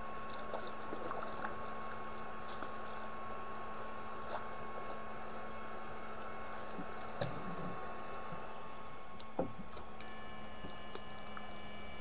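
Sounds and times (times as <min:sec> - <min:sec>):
faint high whine: 0:00.0 - 0:12.0
steady hum: 0:00.0 - 0:12.0
water sounds: 0:00.0 - 0:12.0.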